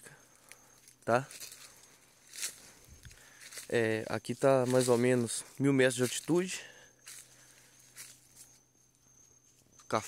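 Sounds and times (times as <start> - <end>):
thin steady high tone: 0.0 - 10.0.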